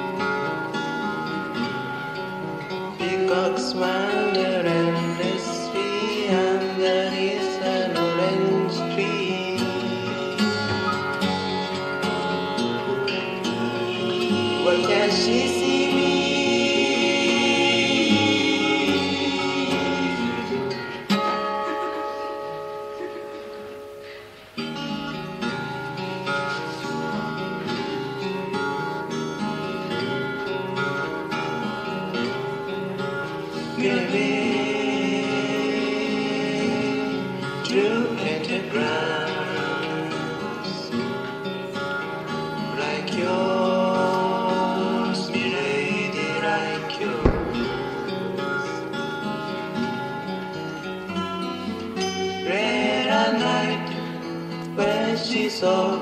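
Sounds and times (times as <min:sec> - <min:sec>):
acoustic guitars: 0:00.0 - 0:56.0
wordless vocal harmonies: 0:00.0 - 0:56.0.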